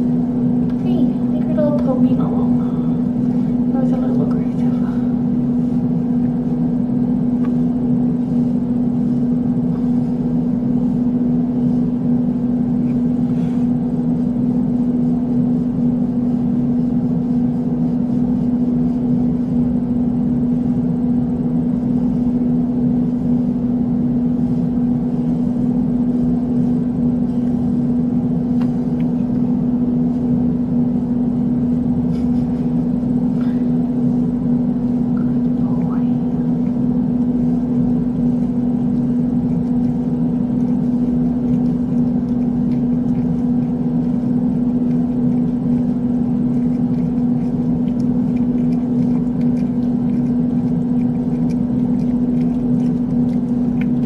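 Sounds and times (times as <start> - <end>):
steady mechanical hum: 0.0 - 54.0.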